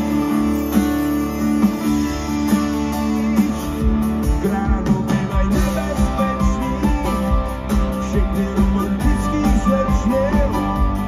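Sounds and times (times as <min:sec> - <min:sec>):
bass: 0:00.0 - 0:11.0
guitars: 0:00.0 - 0:11.0
steady drum beat: 0:00.0 - 0:11.0.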